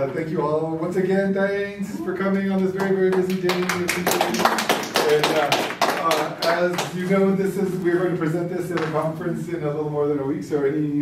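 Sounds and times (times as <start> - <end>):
man speaking: 0.0 - 11.0
people clapping: 2.4 - 7.3.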